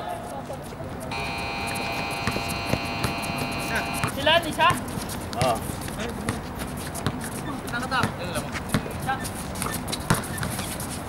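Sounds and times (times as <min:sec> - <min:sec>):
running footsteps: 0:01.1 - 0:06.0.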